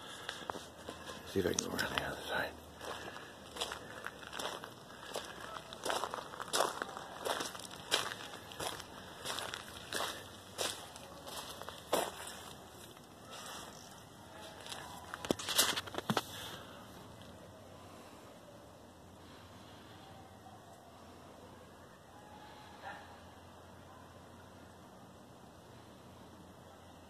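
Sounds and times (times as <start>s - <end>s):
footsteps walking: 0.0s - 16.5s.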